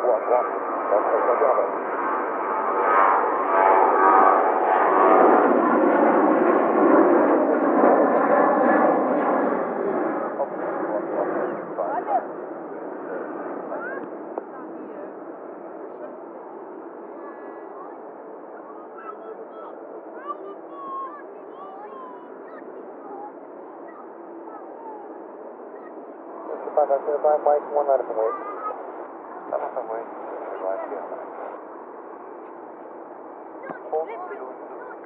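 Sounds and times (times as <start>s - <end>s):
jet engines rumbling loudly: 21.9s - 35.0s.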